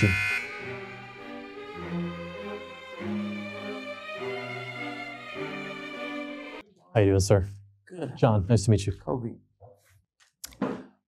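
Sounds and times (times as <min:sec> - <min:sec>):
steady electronic buzzer: 0:00.0 - 0:01.0
slow string music: 0:00.0 - 0:06.6.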